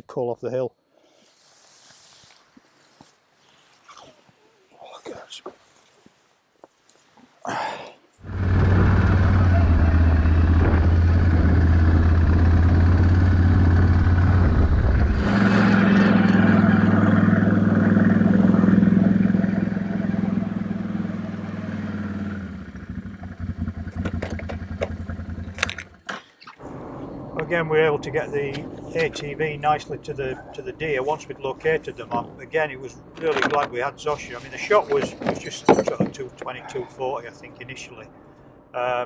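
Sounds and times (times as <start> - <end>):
quad bike engine running: 8.2 - 26.0
knocks: 35.0 - 36.6.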